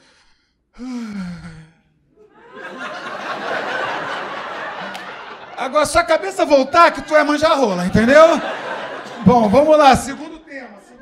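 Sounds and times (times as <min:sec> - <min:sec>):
man's long wordless sigh: 0:00.8 - 0:01.9.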